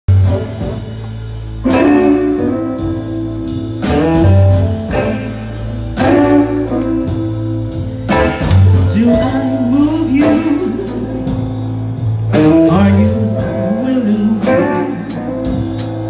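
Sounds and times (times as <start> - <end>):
drums: 0.0 - 16.0
walking bass line: 0.0 - 16.0
horn phrases: 0.1 - 15.8
electric guitar: 0.1 - 16.0
piano: 0.1 - 16.0.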